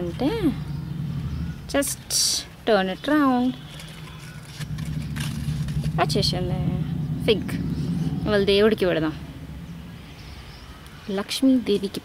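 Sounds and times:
steady low hum: 0:00.0 - 0:11.6.

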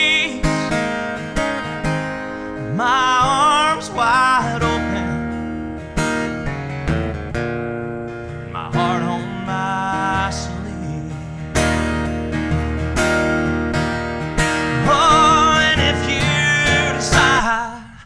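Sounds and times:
man singing: 0:00.0 - 0:01.3, 0:02.6 - 0:05.6, 0:08.5 - 0:11.8, 0:14.6 - 0:18.0
acoustic guitar strumming: 0:00.0 - 0:18.0.

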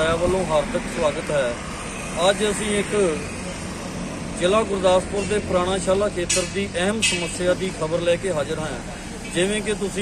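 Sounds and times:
road traffic noise: 0:00.0 - 0:10.0
man speaking: 0:04.4 - 0:10.0.

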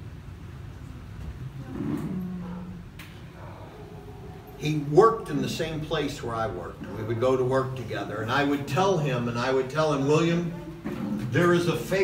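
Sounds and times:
person humming mmm: 0:01.6 - 0:02.9.

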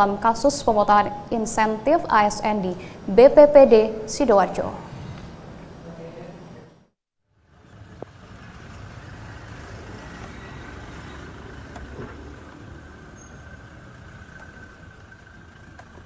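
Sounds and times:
car passing slowly: 0:07.3 - 0:16.0.

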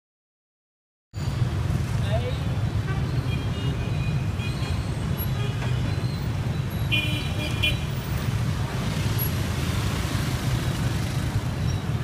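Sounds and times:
street traffic rumble: 0:01.2 - 0:12.0.

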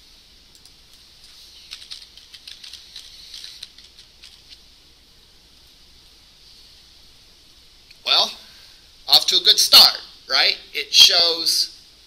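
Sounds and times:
low steady hum: 0:00.0 - 0:12.0
faint keyboard typing: 0:00.5 - 0:04.7.

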